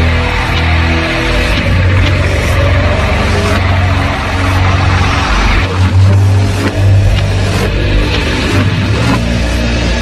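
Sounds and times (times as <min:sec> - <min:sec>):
distorted metal guitar and bass: 0:00.0 - 0:10.0.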